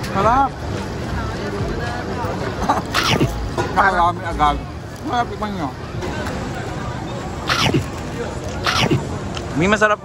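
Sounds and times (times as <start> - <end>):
street market background noise: 0.0 - 10.0.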